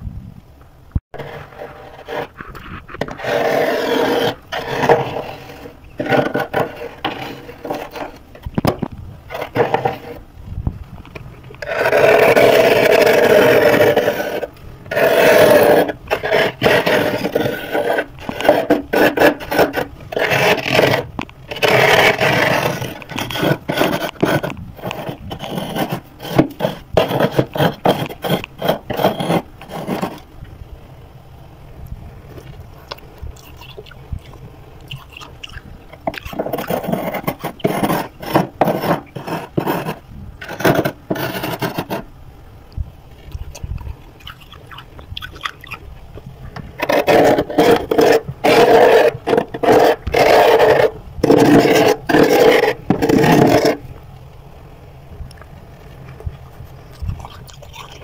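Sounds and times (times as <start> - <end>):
metal spoon scraping frost: 11.7 - 30.2, 36.0 - 42.0.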